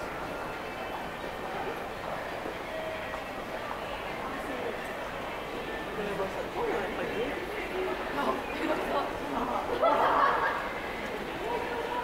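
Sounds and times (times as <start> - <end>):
faint distant voices: 0.0 - 12.0
indoor concourse hubbub: 0.0 - 12.0.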